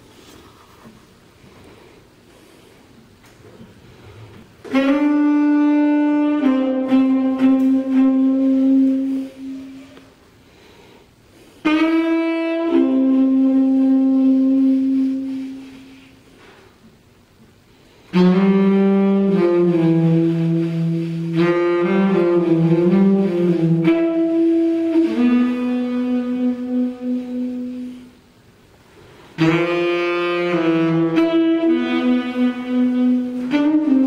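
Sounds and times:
saxophone playing slow phrases: 3.9 - 10.7, 11.4 - 16.9, 17.8 - 28.4, 29.0 - 34.0.

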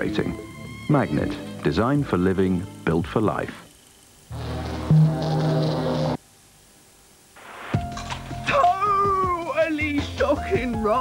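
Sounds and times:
music: 0.0 - 3.7, 4.3 - 6.2, 7.4 - 11.0.

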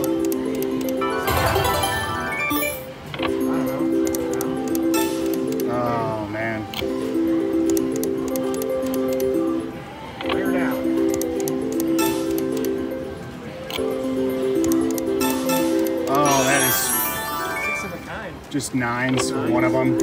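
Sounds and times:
slot machine reel-spin melody: 0.0 - 18.3, 19.2 - 20.0.

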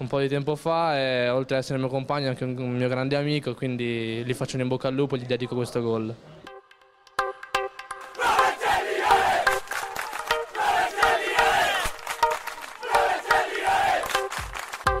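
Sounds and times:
music with sustained notes: 6.5 - 15.0
crowd chanting and shouting: 8.0 - 14.5.

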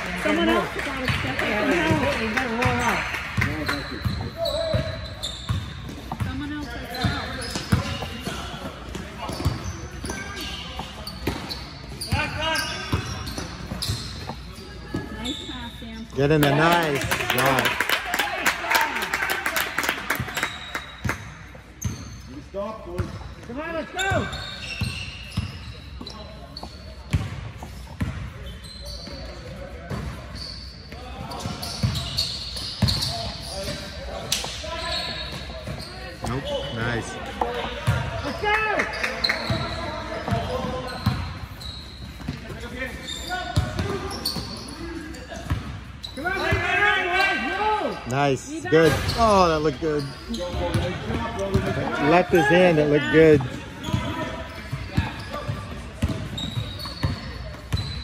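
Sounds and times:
echoing voices in a gym: 0.0 - 58.0
ball bouncing on hardwood court: 0.8 - 9.6, 10.7 - 12.3, 53.4 - 58.0.

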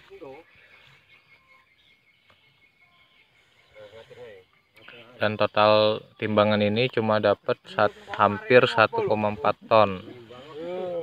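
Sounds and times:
steady high hiss: 3.1 - 11.0.

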